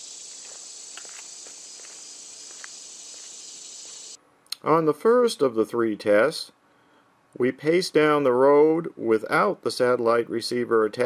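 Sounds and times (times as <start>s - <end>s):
footsteps on paved road: 0.0s - 4.2s
insects chorus: 0.0s - 4.2s.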